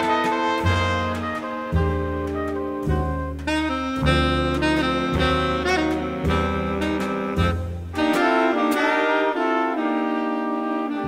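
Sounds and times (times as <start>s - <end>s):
double bass: 0.0s - 11.0s
saxophones and brass held notes: 0.0s - 11.0s.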